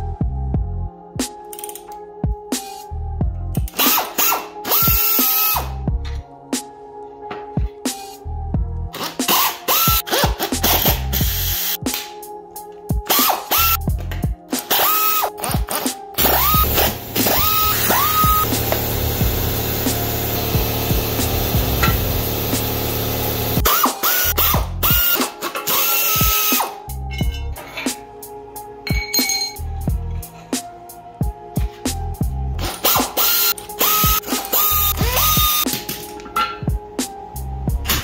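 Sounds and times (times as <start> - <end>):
pneumatic air ratchet whining: 3.7 - 5.7, 9.0 - 11.8, 13.1 - 13.8, 14.6 - 15.5, 16.2 - 26.8, 32.6 - 35.7.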